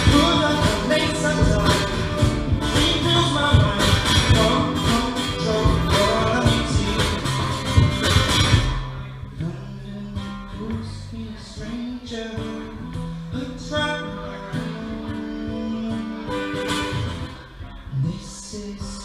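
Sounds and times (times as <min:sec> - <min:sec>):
acoustic guitar playing: 0:00.0 - 0:19.0.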